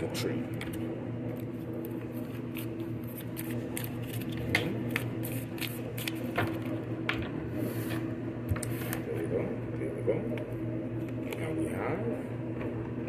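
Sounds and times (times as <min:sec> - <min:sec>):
cards being shuffled: 0:00.5 - 0:06.8.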